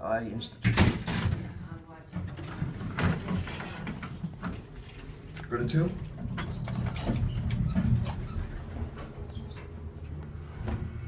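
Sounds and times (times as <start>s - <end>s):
elevator doors sliding open: 2.3s - 11.0s.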